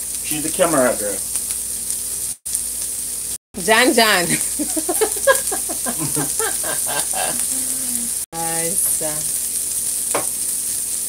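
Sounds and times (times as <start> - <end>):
meat and onion sizzling in pan: 0.0 - 11.0.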